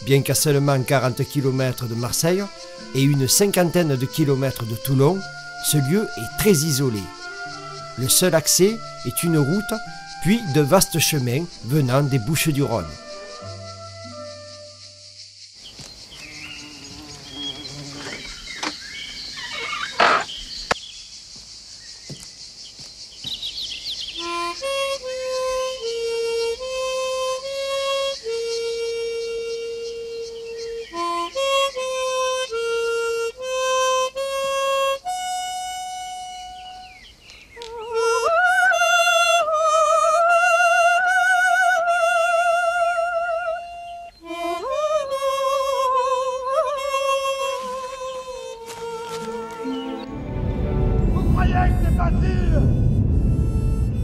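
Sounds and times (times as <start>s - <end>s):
harmonica slow melody: 0.0s - 15.2s, 24.1s - 51.4s, 52.1s - 54.0s
high insect buzz: 0.0s - 51.1s.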